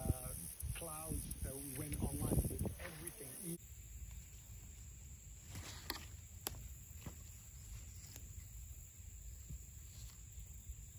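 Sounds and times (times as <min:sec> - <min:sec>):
leaves rustling: 0:00.0 - 0:10.9.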